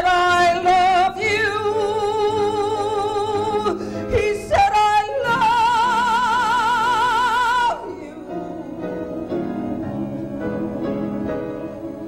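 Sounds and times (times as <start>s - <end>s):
woman singing into microphone: 0.0s - 9.2s
instrumental accompaniment: 5.2s - 12.0s.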